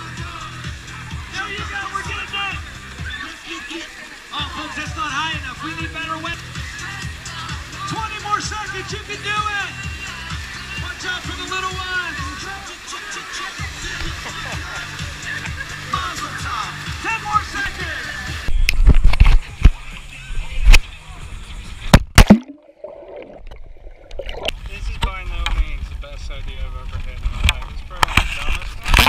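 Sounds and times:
pop music with steady beat: 0.0s - 18.6s
water splashing: 0.3s - 20.9s, 21.8s - 25.0s.

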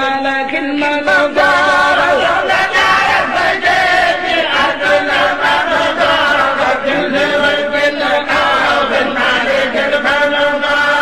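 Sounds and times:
voices chanting religious recitation: 0.0s - 11.0s.

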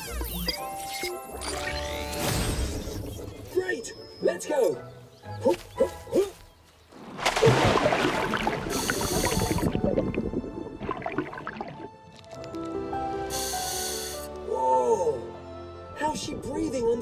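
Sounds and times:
splash into water: 7.0s - 11.9s
water bubbling and gurgling: 7.0s - 12.2s.

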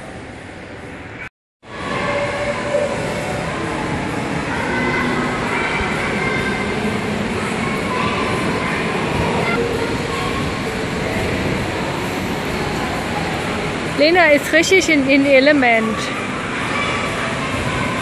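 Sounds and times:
rumbling din of play hall: 0.0s - 18.0s.

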